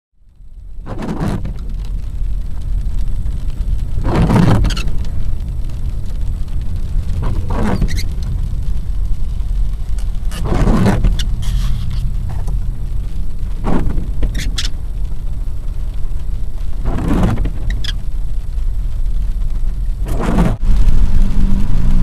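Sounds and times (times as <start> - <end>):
low road rumble: 0.2 - 22.0
tyre swish on wet road: 0.9 - 22.0.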